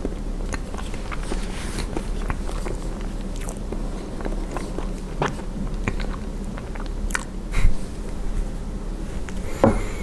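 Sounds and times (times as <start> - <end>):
chewing with mouth closed: 0.0 - 8.2.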